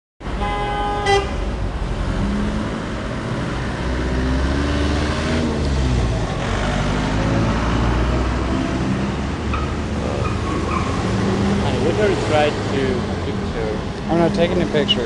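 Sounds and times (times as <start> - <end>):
low road rumble: 0.2 - 15.0
car horn honk: 0.4 - 1.5
car engines accelerating: 1.2 - 15.0.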